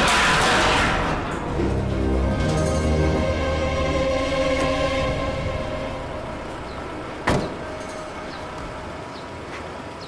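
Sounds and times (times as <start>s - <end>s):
car door shutting: 7.2s - 7.6s.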